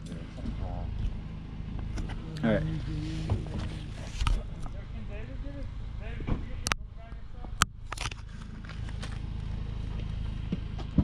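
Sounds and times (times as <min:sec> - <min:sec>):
people talking: 0:00.0 - 0:01.1, 0:02.0 - 0:07.6
low outdoor rumble: 0:00.0 - 0:11.0.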